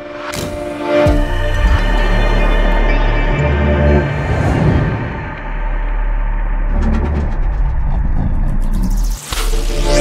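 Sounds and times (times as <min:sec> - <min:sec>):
deep rumbling drone: 0:01.1 - 0:09.9.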